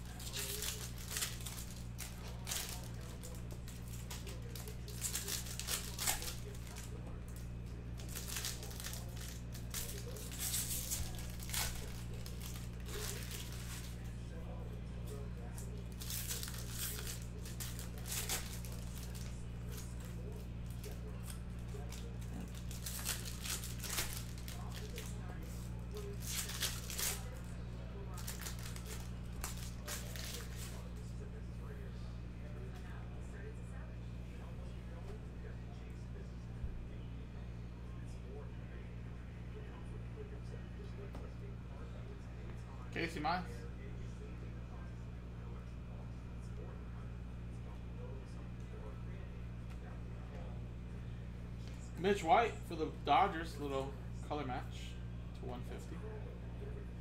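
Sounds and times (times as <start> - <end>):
foil packs crinkling and tearing: 0.0 - 6.9, 8.0 - 14.0, 15.9 - 25.3, 25.9 - 27.4, 28.1 - 30.8
steady low hum: 0.0 - 57.0
cards being handled: 0.1 - 14.1, 28.2 - 31.0.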